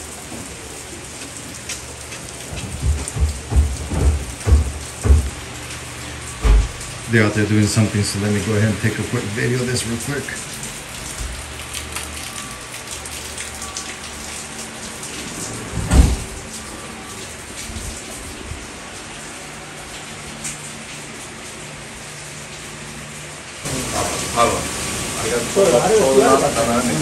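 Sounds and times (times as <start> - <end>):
steady rain hiss: 0.0 - 27.0
heavy thump: 2.6 - 5.4, 6.4 - 6.8, 15.8 - 16.3.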